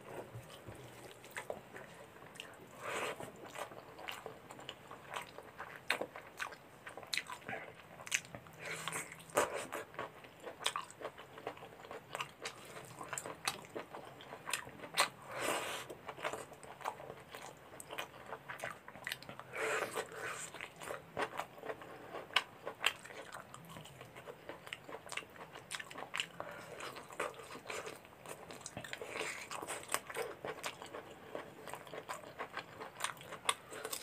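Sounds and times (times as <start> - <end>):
chewing and wet mouth sounds: 0.1 - 34.0.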